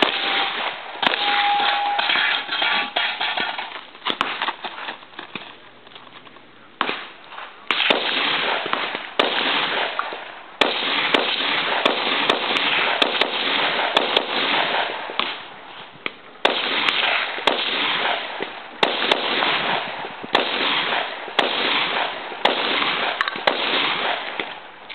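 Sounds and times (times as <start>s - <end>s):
gunshots with long echo: 0.0s - 4.5s, 6.8s - 15.7s, 16.4s - 24.8s.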